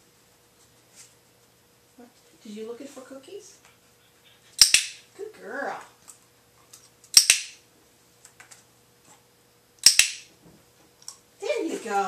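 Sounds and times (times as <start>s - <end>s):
dog training clicker clicks: 4.6s - 5.0s, 7.1s - 7.6s, 9.8s - 10.2s.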